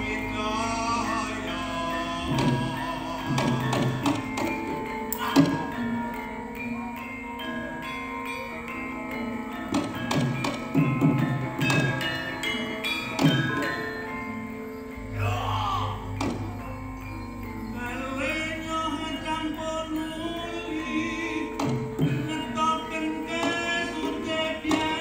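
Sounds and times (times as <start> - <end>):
person singing: 0.0 - 14.4, 15.1 - 17.0, 17.6 - 25.0
metallophones and gongs ringing: 0.0 - 25.0
drum and percussion strikes: 2.2 - 6.1, 9.6 - 14.0, 16.1 - 16.8, 21.6 - 22.5, 23.3 - 25.0.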